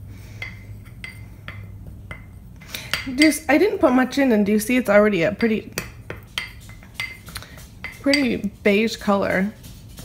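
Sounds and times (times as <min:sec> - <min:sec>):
metal spoon clinking glass bowl: 0:00.4 - 0:03.6, 0:05.2 - 0:08.5.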